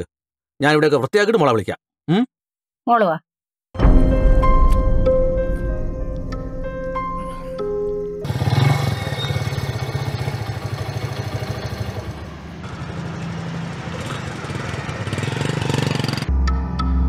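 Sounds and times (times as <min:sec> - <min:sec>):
soft ambient music: 0:03.8 - 0:08.2
motorcycle engine passing by: 0:08.2 - 0:16.3.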